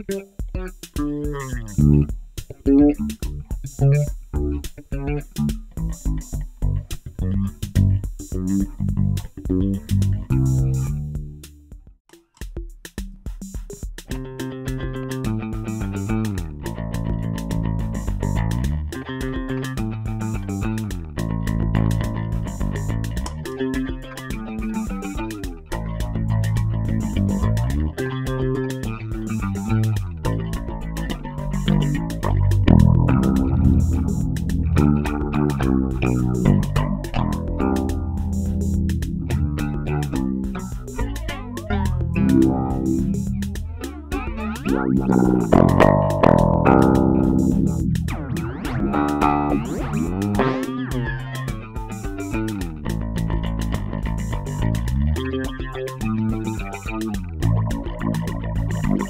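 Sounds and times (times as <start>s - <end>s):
electric bass with flanger: 0.0s - 11.5s, 14.1s - 59.0s.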